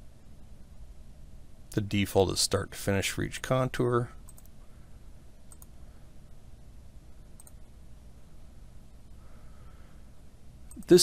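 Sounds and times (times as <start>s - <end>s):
low steady room hum: 0.0s - 11.0s
computer mouse clicks: 4.2s - 4.6s, 5.5s - 5.8s, 7.4s - 7.6s, 10.7s - 11.0s.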